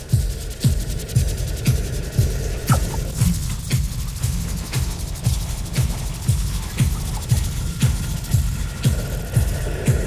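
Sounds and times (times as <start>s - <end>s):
kick drum: 0.0s - 10.0s
high synth tone: 2.7s - 3.1s.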